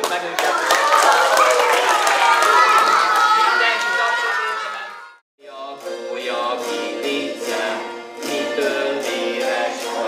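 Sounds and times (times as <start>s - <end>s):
rhythmic hand clapping: 0.0s - 3.4s
children's voices: 0.3s - 5.2s.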